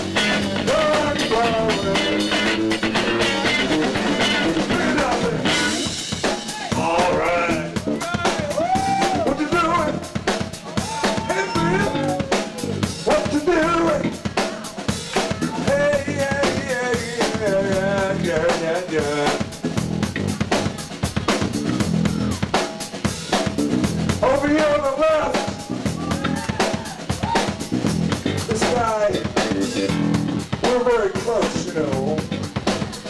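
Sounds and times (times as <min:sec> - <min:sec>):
electric guitar lead: 0:00.0 - 0:06.0, 0:11.3 - 0:13.0, 0:25.5 - 0:30.6
electric bass: 0:00.0 - 0:10.4, 0:11.5 - 0:14.4, 0:15.0 - 0:18.6, 0:19.2 - 0:22.6, 0:23.3 - 0:33.0
drum kit beat: 0:00.0 - 0:33.0.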